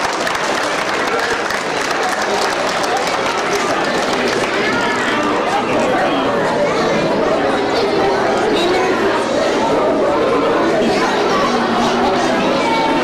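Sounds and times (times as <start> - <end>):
children chattering: 0.0 - 13.0.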